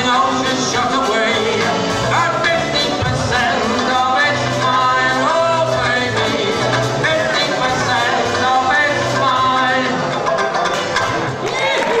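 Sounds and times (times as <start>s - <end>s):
man singing: 0.0s - 10.1s
ukulele-banjo strumming: 0.0s - 12.0s.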